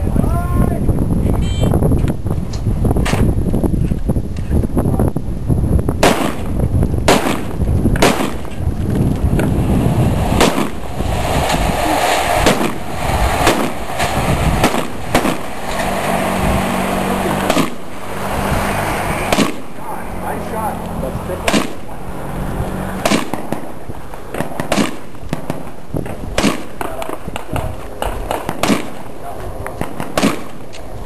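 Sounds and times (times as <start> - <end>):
steady low rumble: 0.0 - 31.0
gunshots: 6.0 - 8.6, 9.6 - 15.9, 17.2 - 17.9, 19.2 - 19.8, 21.4 - 21.9, 23.0 - 29.2, 29.8 - 30.7.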